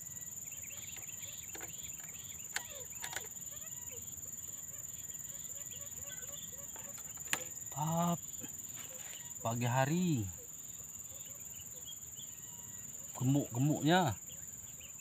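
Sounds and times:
faint bird chirps: 0.0 - 15.0
insects droning: 0.0 - 15.0
sharp clicks: 0.8 - 3.4.

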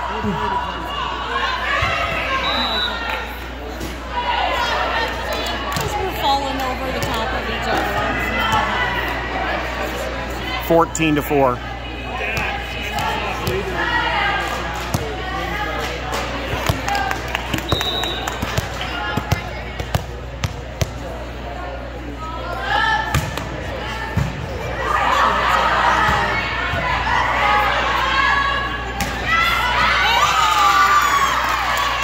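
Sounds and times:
crowd chatter in a hall: 0.0 - 32.0
murmur of voices: 0.0 - 32.0.

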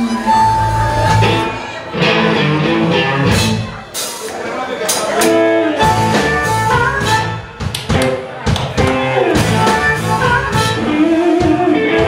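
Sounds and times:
blues band playing: 0.0 - 12.0
harmonica bending notes: 5.4 - 7.7, 9.0 - 12.0.

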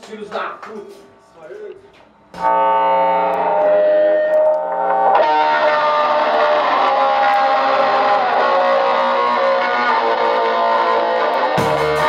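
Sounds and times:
distorted electric guitar chords: 2.3 - 12.0.

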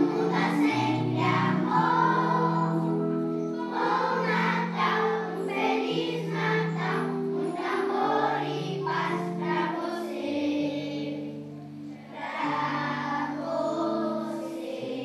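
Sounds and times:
children's choir singing: 0.0 - 15.0.

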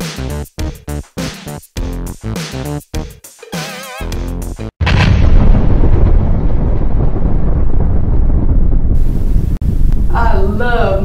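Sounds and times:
explosion with deep rumble: 4.8 - 10.6.

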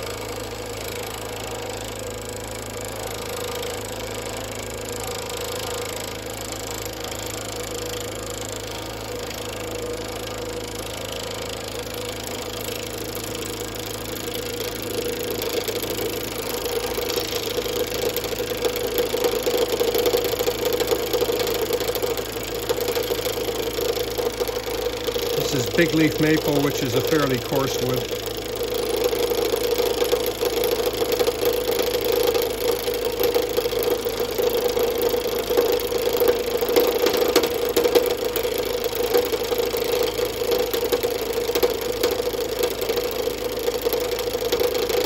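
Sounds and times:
cutter rattling buzz on wood: 7.0 - 35.9.

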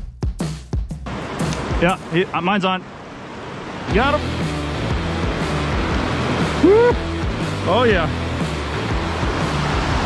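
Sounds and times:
river water rushing over rocks: 1.1 - 10.0
low background music: 3.9 - 10.0.

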